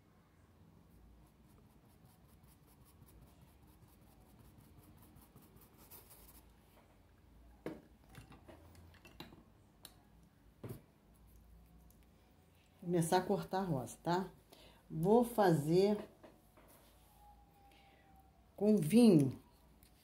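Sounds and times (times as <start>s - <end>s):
paintbrush scratching on cloth: 0.9s - 6.5s.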